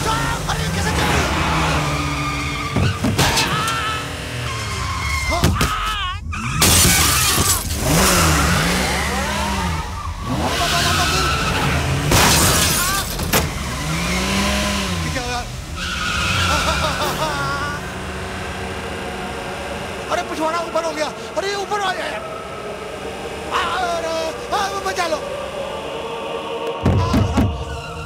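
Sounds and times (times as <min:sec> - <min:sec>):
man wailing and yelling: 0:00.0 - 0:01.7, 0:03.4 - 0:04.2, 0:05.3 - 0:06.4, 0:10.4 - 0:11.6, 0:16.4 - 0:18.0, 0:23.5 - 0:26.0, 0:26.7 - 0:27.7
tyres squealing: 0:00.0 - 0:14.3, 0:15.1 - 0:18.0, 0:26.8 - 0:28.0
loud rushing swooshes: 0:22.1 - 0:28.0.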